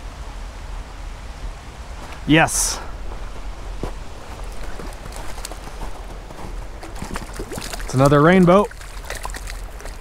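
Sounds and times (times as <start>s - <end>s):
creek running: 0.0s - 10.0s.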